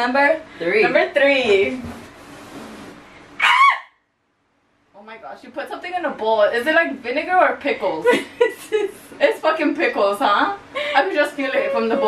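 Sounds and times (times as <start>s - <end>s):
faint room hiss: 0.0s - 12.0s
woman squealing: 3.4s - 4.0s, 11.4s - 12.0s.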